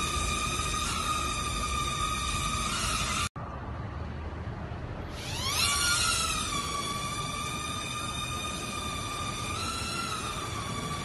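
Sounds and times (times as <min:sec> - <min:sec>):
toy drone propeller motors: 0:00.0 - 0:03.3, 0:05.0 - 0:11.0.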